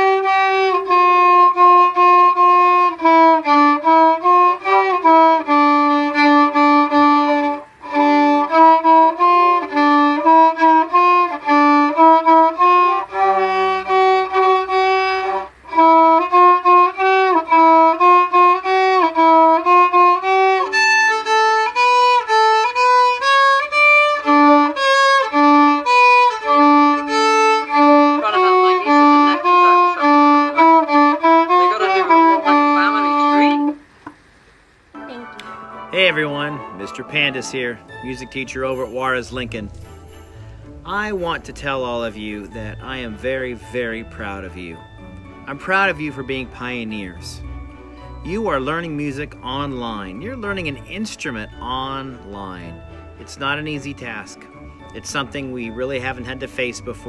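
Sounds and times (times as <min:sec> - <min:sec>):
solo violin tune: 0:00.0 - 0:33.9, 0:35.0 - 0:57.0.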